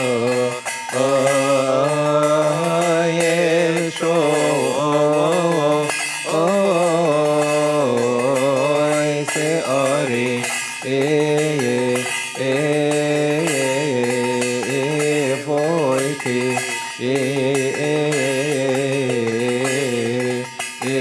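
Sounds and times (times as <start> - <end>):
light metallic ringing: 0.0 - 21.0
man chanting a hymn: 0.0 - 21.0.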